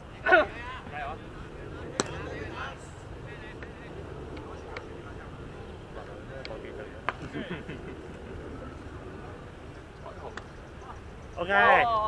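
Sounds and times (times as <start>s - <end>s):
steady low rumble: 0.0s - 11.4s
distant voices: 0.0s - 12.0s.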